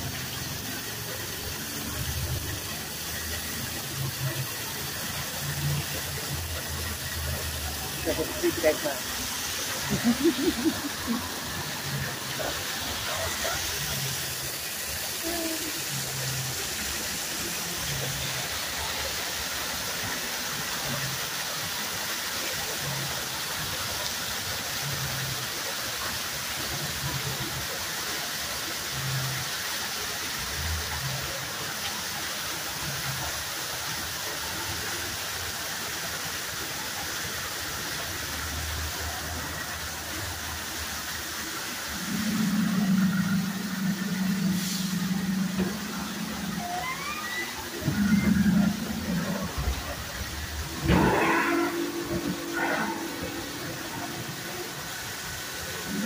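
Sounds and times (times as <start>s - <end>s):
waterfall rushing: 0.0s - 56.0s.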